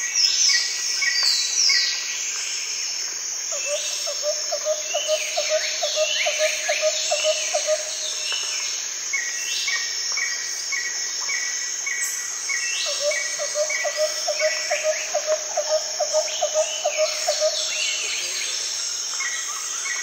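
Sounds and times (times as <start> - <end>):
steady high hiss: 0.0 - 20.0.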